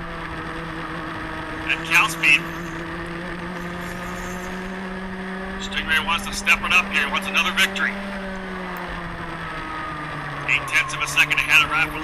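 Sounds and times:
kart engine at high revs: 0.0 - 12.0.

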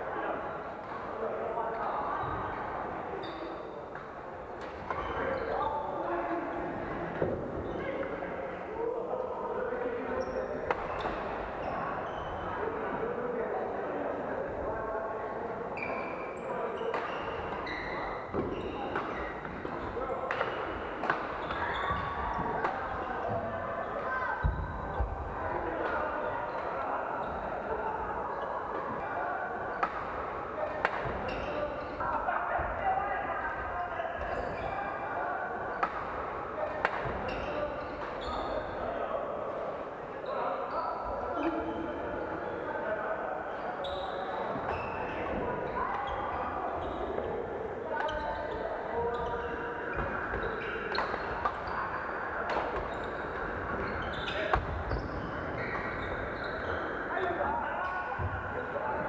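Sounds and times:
chatter of many voices: 0.0 - 59.0
sneakers squeaking on wooden floor: 10.2 - 12.6, 15.8 - 25.2, 30.9 - 32.0, 34.0 - 34.9, 36.6 - 38.8, 43.6 - 47.4, 48.0 - 59.0.

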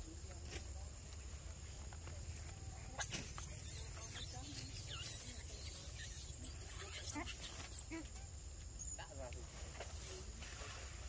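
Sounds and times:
macaques squealing: 3.0 - 8.2, 8.8 - 9.0.

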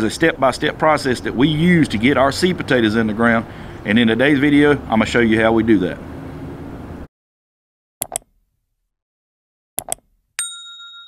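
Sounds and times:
double mouse click: 8.0 - 8.3, 9.8 - 10.0
notification bell ding: 10.4 - 11.0.

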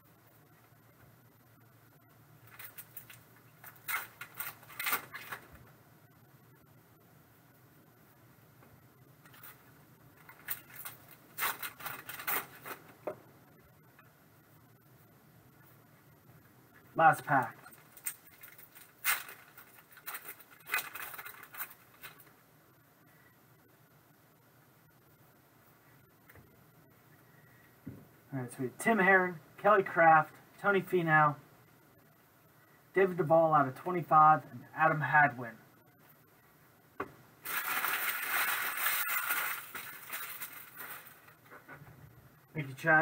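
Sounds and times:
foil wrapper tearing and crinkling: 2.5 - 5.4, 10.3 - 12.8, 17.8 - 22.3, 37.4 - 41.4.

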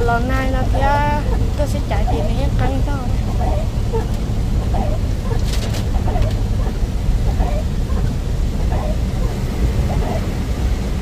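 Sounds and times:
person speaking: 0.0 - 3.3
car engine rumble: 0.0 - 11.0
tyres on wet road: 0.0 - 11.0.

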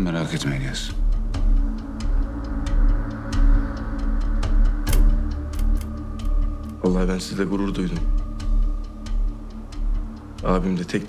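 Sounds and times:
low drone: 1.1 - 10.7.

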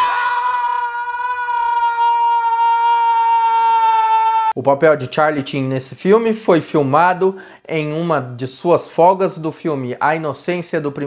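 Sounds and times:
young man screaming: 0.0 - 4.6.

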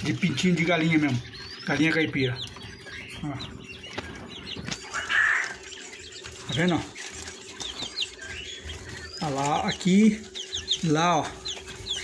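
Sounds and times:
young quail peeping: 0.0 - 12.0.

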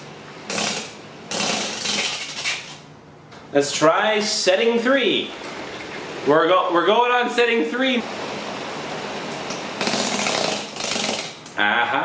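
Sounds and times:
electric fan whirring: 0.0 - 12.0
sandpaper grinding on skin: 0.5 - 2.8.

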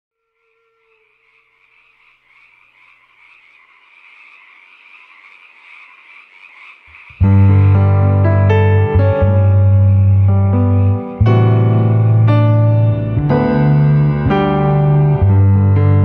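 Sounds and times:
frogs croaking: 0.2 - 8.7
deep bass line: 7.2 - 16.0
piano chords on keyboard: 7.2 - 16.0.

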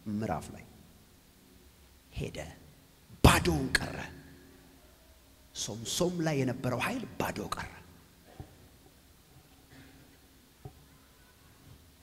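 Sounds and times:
man speaking into a microphone: 0.0 - 0.8, 3.2 - 4.3, 5.5 - 7.9.

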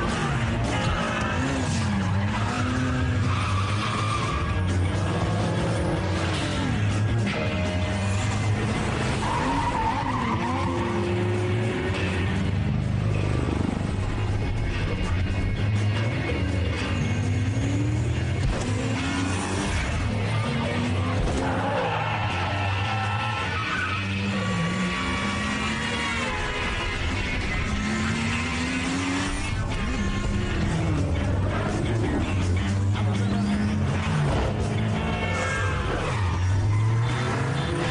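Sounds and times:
car tyres squealing: 0.0 - 13.7, 14.4 - 37.9
car engines running: 0.0 - 37.9.

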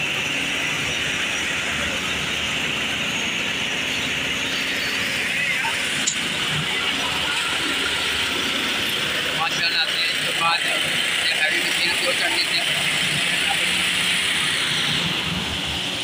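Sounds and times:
road-paving machinery: 0.0 - 16.0
street traffic: 0.0 - 16.0
people talking: 0.9 - 2.4, 3.9 - 14.2.

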